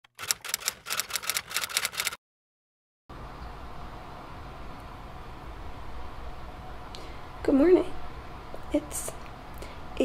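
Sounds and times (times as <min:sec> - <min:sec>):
typewriter keys clacking: 0:00.0 - 0:02.2.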